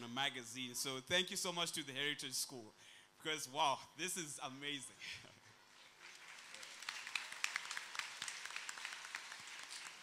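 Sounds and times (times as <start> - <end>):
audience applauding: 6.0 - 10.0.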